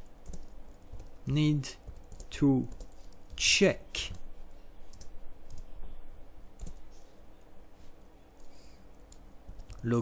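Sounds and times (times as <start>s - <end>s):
keyboard typing clicks: 0.2s - 1.2s, 1.8s - 3.4s, 4.9s - 5.7s, 6.6s - 7.5s, 8.4s - 9.9s.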